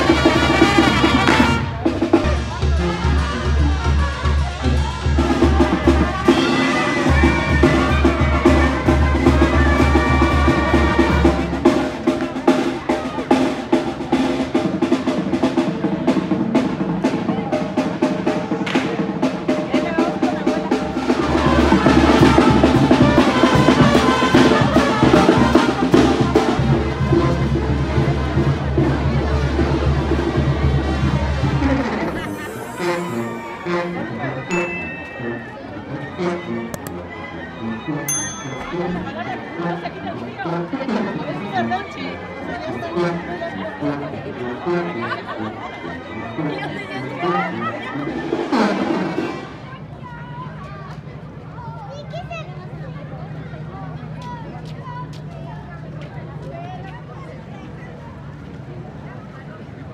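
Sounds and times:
snare drum rolls: 0:00.0 - 0:29.8
band music: 0:00.0 - 0:49.7.

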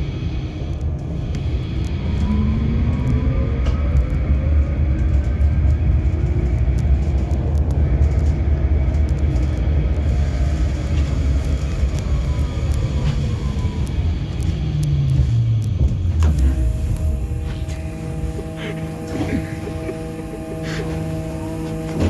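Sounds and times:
tram rumbling on rails: 0:00.0 - 0:22.0.

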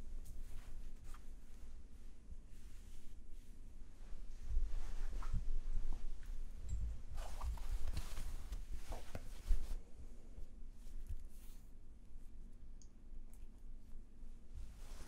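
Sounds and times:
fabric rustling: 0:00.0 - 0:11.8, 0:14.4 - 0:15.0.

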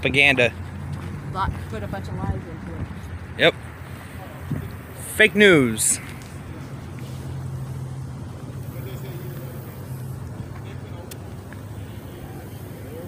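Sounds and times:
vehicle engine idling: 0:00.0 - 0:13.0.

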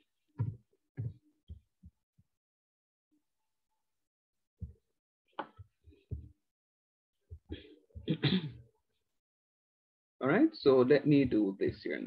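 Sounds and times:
soft dull thumps: 0:00.4 - 0:01.7, 0:05.4 - 0:06.4.

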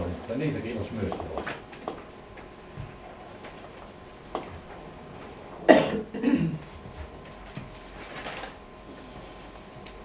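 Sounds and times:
person coughing: 0:05.7 - 0:06.6.

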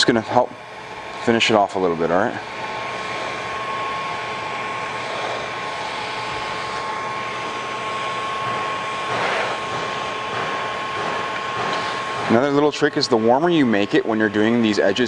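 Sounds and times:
heat gun blowing with whine: 0:00.0 - 0:15.0.

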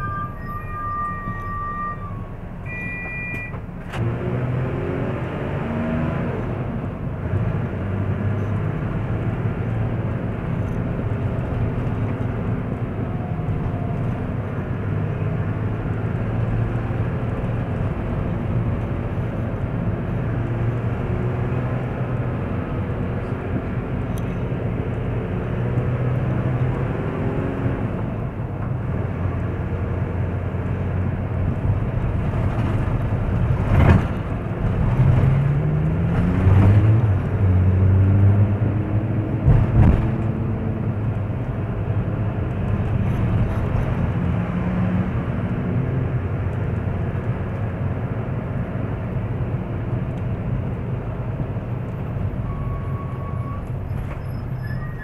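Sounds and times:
car engine hum: 0:00.0 - 0:55.0
road noise: 0:00.0 - 0:55.0.

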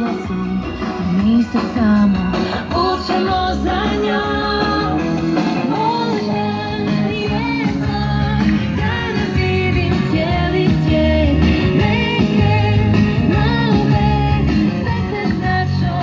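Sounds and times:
person singing: 0:00.0 - 0:16.0
rock song on radio: 0:00.0 - 0:16.0.

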